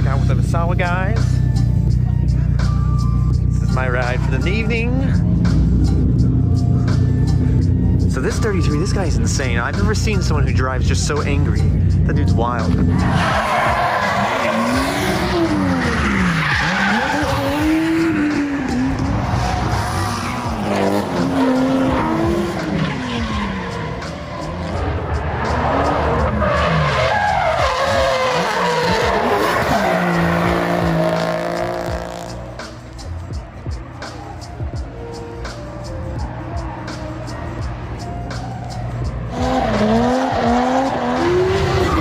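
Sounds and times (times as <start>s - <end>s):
car engines revving: 0.0s - 42.0s
tyre squeal and skidding: 12.8s - 32.3s, 35.9s - 42.0s.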